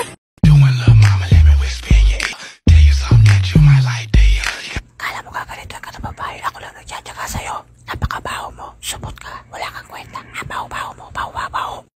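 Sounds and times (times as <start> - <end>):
person whispering: 0.5 - 11.9.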